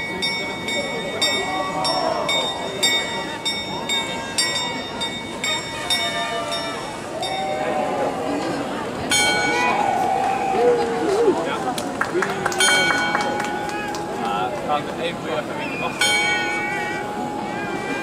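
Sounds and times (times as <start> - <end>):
small clock bell striking: 0.0 - 7.6, 16.0 - 17.4
crowd chatter: 0.0 - 18.0.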